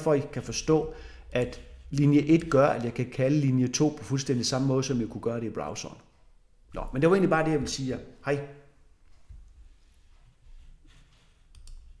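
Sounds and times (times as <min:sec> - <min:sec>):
computer mouse clicks: 0:11.5 - 0:12.0.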